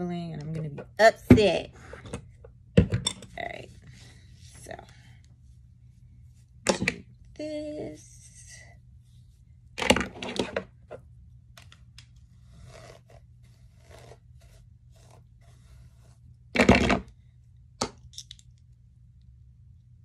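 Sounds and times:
hair rustling and scraping: 12.0s - 16.4s
comb strokes through hair: 12.2s - 16.3s.

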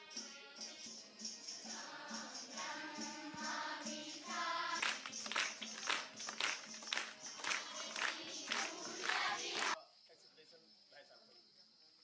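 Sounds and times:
children singing in chorus: 1.6s - 5.1s, 7.4s - 9.8s
sharp rhythmic beats: 1.6s - 9.8s.

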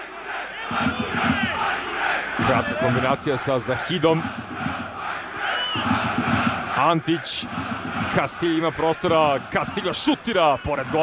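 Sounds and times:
stadium crowd shouting: 0.0s - 11.0s.

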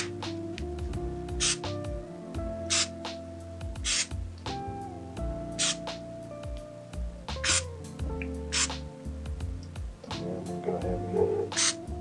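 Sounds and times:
background music: 0.0s - 12.0s
aerosol spray can hissing: 1.4s - 1.7s, 2.7s - 3.0s, 3.8s - 4.1s, 5.6s - 5.8s, 8.5s - 8.8s.

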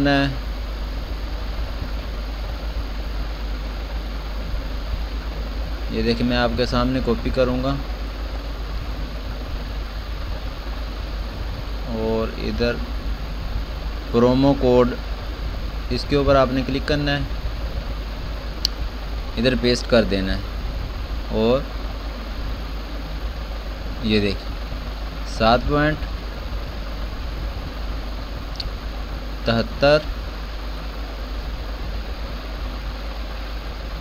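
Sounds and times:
low hum: 0.0s - 34.0s
microphone hiss: 0.0s - 34.0s.

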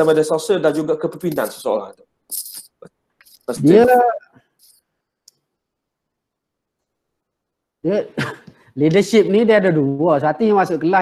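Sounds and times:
man speaking: 0.0s - 4.4s.

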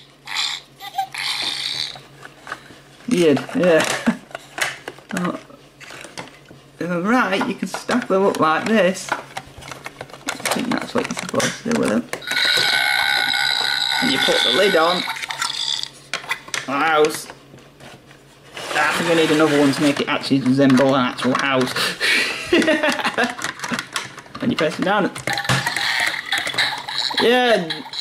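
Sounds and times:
toy speaker sound effect: 0.0s - 2.0s, 12.2s - 15.9s, 25.3s - 28.0s
high electronic ringing tone: 12.2s - 15.9s.

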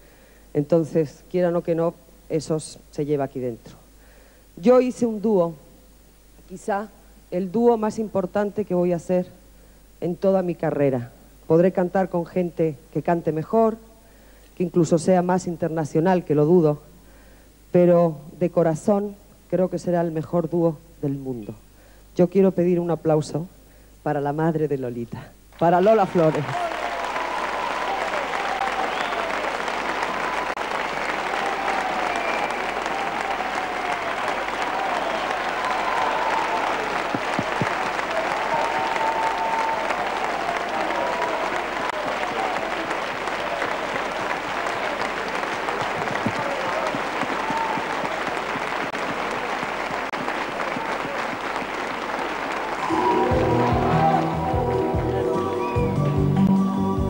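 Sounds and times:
studio audience applauding: 25.5s - 56.5s
band playing: 52.7s - 57.0s.

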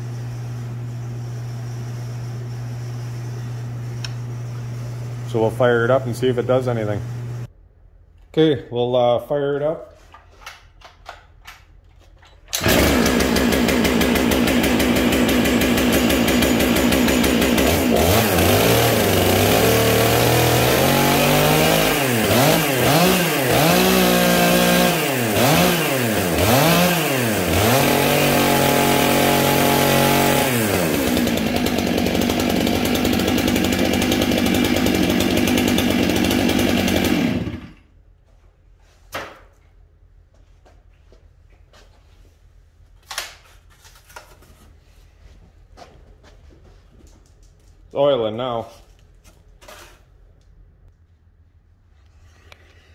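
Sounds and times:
chainsaw engine revving and idling: 12.6s - 37.8s.

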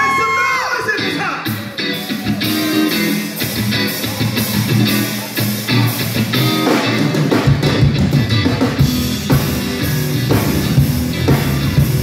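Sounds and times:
live gospel band playing: 0.0s - 12.0s.

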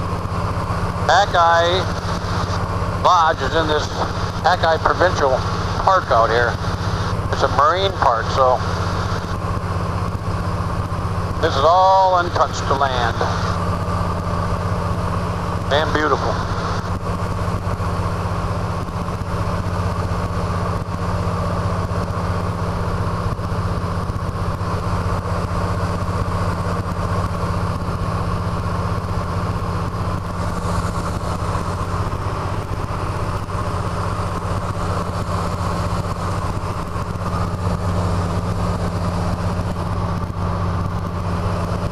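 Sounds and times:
aircraft engine droning: 0.0s - 41.9s.

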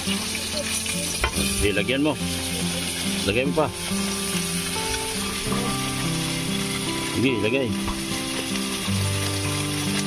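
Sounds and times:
background music: 0.0s - 10.0s
food sizzling in a wok: 0.0s - 10.0s.

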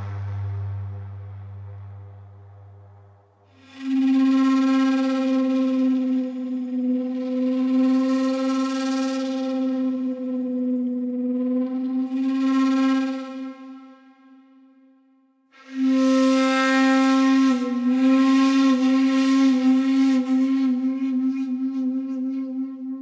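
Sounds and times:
low drone: 0.0s - 14.0s
shakuhachi held note with flutter: 15.6s - 23.0s.

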